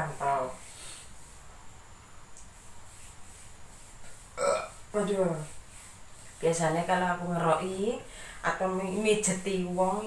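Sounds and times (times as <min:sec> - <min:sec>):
person burping: 0:04.4 - 0:04.8.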